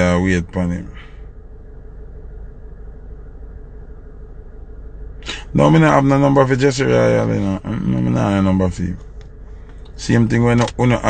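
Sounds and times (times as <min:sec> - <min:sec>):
faint constant hum: 0:00.0 - 0:11.0
steady low rumble: 0:00.0 - 0:11.0.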